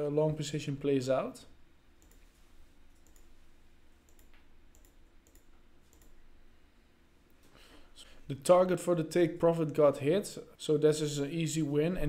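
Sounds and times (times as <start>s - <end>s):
low steady hum: 0.0s - 12.0s
computer mouse clicks: 2.0s - 2.3s, 2.9s - 3.3s, 4.0s - 6.2s.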